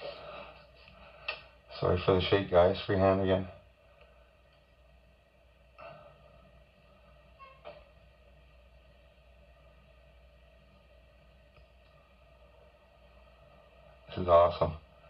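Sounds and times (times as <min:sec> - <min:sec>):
faint steady background hum: 0:00.0 - 0:15.0.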